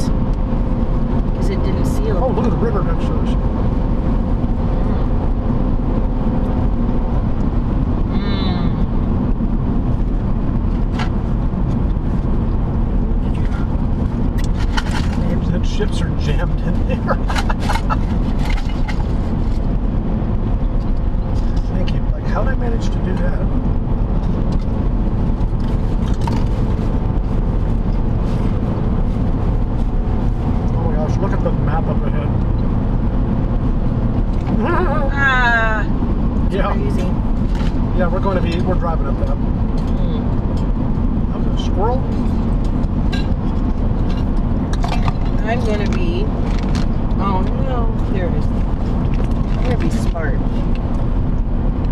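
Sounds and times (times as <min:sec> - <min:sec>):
car road and engine noise: 0:00.0 - 0:51.9.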